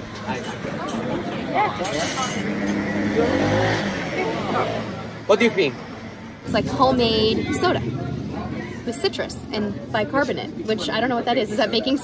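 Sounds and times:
people chattering: 0:00.0 - 0:12.0
motor vehicle passing: 0:00.6 - 0:11.3.

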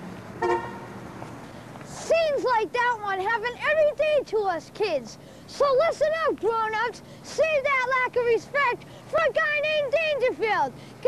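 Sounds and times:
street traffic hum: 0:00.0 - 0:11.0
car horn toot: 0:00.4 - 0:01.0.

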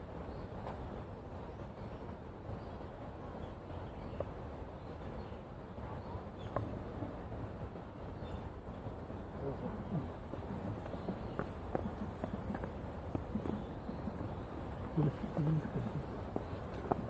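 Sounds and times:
faint voices: 0:09.2 - 0:17.0
footsteps on dirt path: 0:10.0 - 0:17.0.

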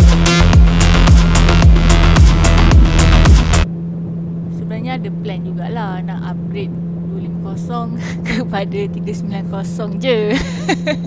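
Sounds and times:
wind rushing: 0:00.0 - 0:04.5
motorcycle engine high-speed drone: 0:00.0 - 0:11.0.

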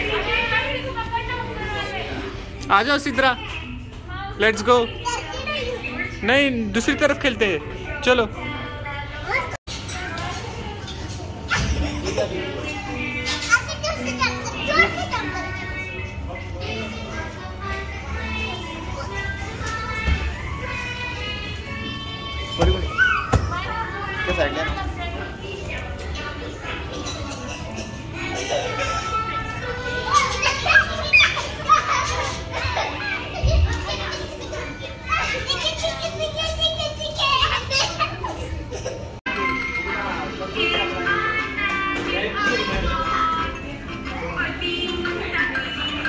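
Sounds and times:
children shouting at play: 0:22.5 - 0:24.1, 0:26.3 - 0:39.2
background music: 0:38.8 - 0:46.0.

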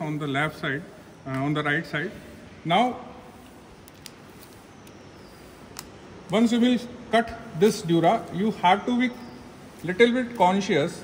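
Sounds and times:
faint sharp clicks: 0:05.7 - 0:06.4.

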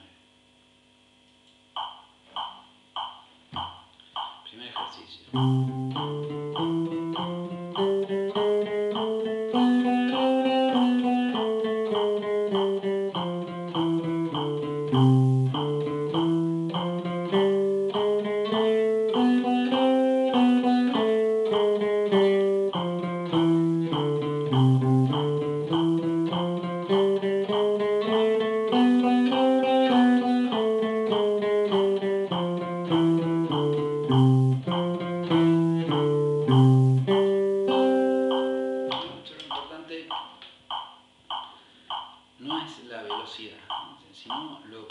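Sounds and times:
jazz guitar single notes picked: 0:05.3 - 0:39.4.

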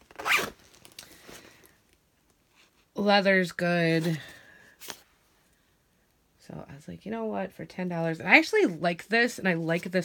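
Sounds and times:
handbag zipper pulled: 0:00.1 - 0:00.6.

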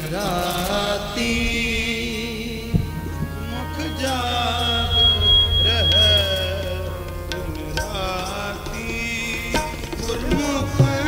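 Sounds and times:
man singing: 0:00.0 - 0:11.0
harmonium chords: 0:00.5 - 0:11.0
tabla strokes: 0:02.6 - 0:11.0.

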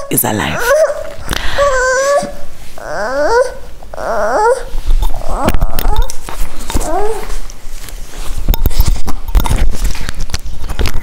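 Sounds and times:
young child whining and crying: 0:00.0 - 0:06.0, 0:06.8 - 0:07.4.

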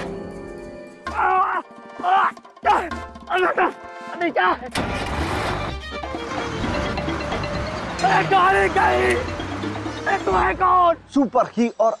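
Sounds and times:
person shouting: 0:01.1 - 0:04.5
van engine starting and running: 0:04.7 - 0:11.0.

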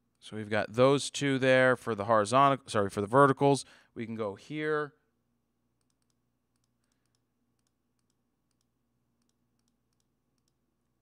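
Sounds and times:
computer mouse clicks: 0:05.8 - 0:10.6.

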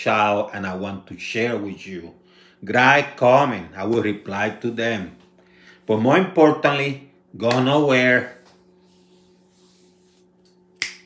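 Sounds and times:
faint low hum: 0:00.0 - 0:11.0
finger snap: 0:07.4 - 0:07.8, 0:10.4 - 0:11.0.

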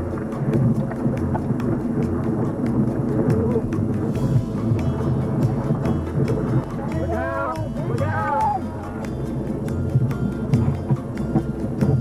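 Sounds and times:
whitewater rapids rushing: 0:00.0 - 0:12.0.

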